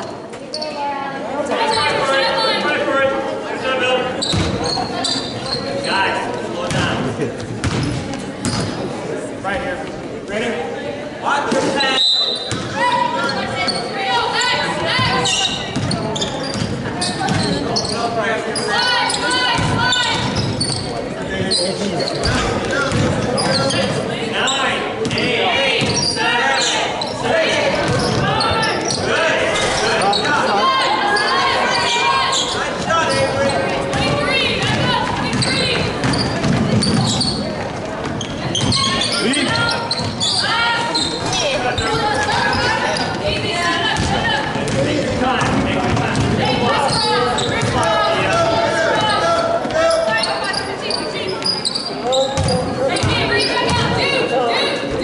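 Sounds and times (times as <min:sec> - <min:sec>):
voices calling and shouting: 0:00.0 - 0:55.0
basketball bouncing on court: 0:04.3 - 0:04.6, 0:07.6 - 0:08.8, 0:15.0 - 0:17.6, 0:19.5 - 0:20.9, 0:22.3 - 0:23.6, 0:25.8 - 0:26.0, 0:33.4 - 0:40.2, 0:43.9 - 0:48.4, 0:52.4 - 0:54.0.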